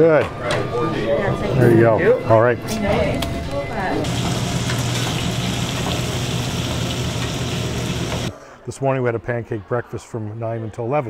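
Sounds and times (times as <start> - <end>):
batter sizzling on griddle: 4.0 - 8.3.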